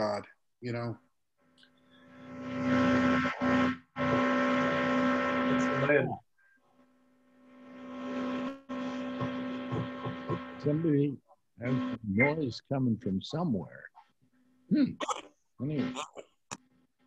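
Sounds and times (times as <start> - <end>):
electrical hum: 1.6 - 13.9, 14.7 - 16.1.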